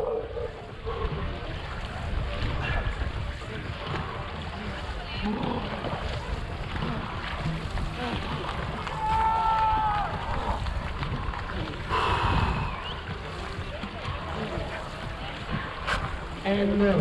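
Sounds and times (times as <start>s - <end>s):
water splashing around boat: 0.0s - 17.0s
wind buffeting microphone: 0.0s - 17.0s.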